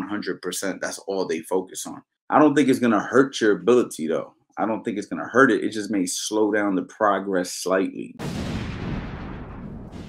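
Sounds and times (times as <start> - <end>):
low boom with rumble: 8.2 - 10.0.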